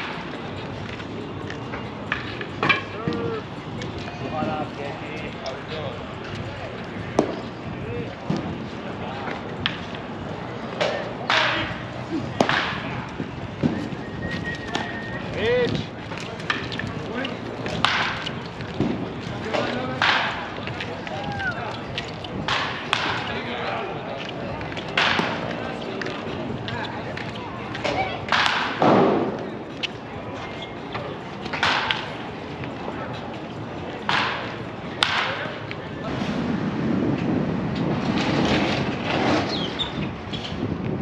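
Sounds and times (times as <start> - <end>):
spectators talking: 0.0 - 41.0.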